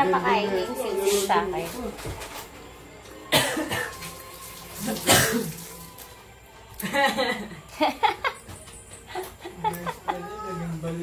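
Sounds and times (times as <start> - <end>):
person coughing: 3.3 - 3.9, 5.0 - 5.5.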